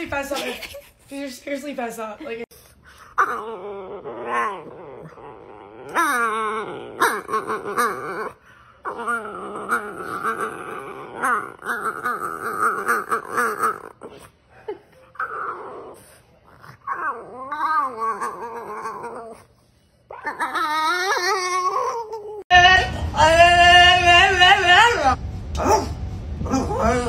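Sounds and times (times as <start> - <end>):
dog grumbling and moaning: 3.0 - 27.0
steady low hum: 22.5 - 27.0.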